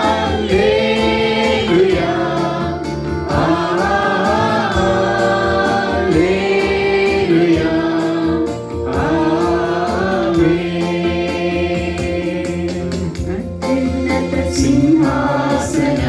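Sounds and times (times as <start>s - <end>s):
group singing gospel song: 0.0s - 16.0s
instrumental accompaniment with beat: 0.0s - 16.0s.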